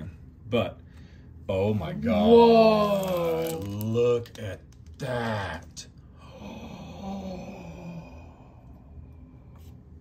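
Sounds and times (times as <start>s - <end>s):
person humming in awe: 6.2s - 8.7s.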